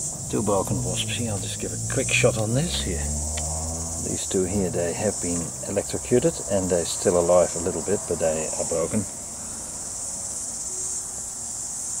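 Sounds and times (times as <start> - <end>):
insects trilling: 0.0 - 12.0.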